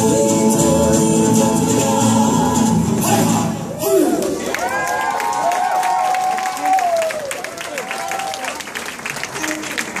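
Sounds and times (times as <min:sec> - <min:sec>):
audience clapping: 0:04.2 - 0:10.0.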